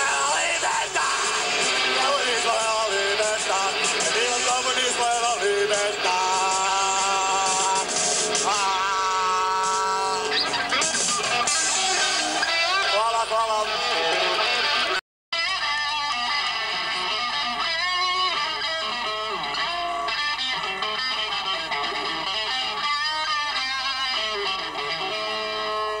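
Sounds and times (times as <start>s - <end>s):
rock band with electric guitars: 0.0s - 26.0s.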